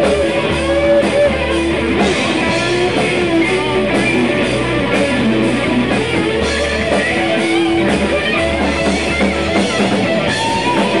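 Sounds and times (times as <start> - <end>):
drum kit: 0.0 - 11.0
electric guitars sustaining notes: 0.0 - 11.0.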